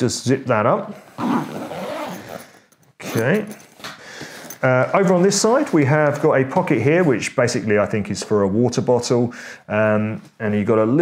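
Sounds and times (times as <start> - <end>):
zip being pulled closed: 1.0 - 3.5.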